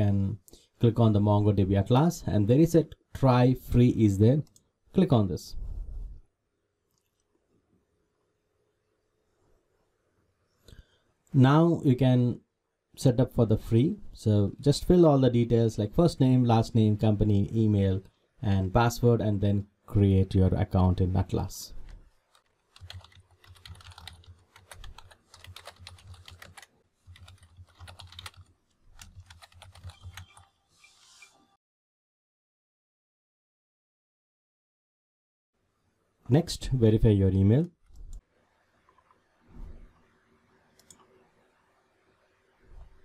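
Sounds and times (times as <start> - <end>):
typing on computer keyboard: 22.3 - 30.5.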